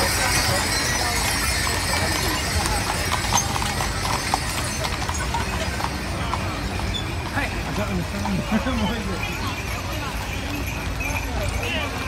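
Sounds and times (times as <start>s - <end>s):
crowd chatter: 0.0s - 12.0s
hooves clip-clopping on pavement: 0.0s - 12.0s.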